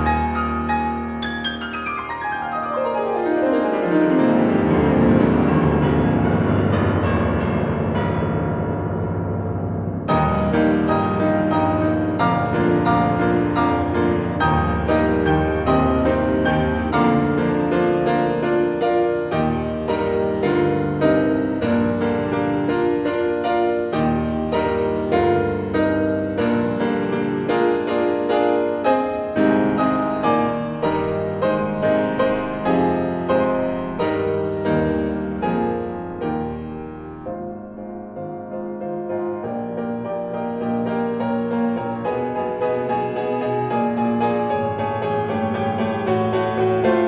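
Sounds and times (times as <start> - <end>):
solo piano chords: 0.0 - 47.0.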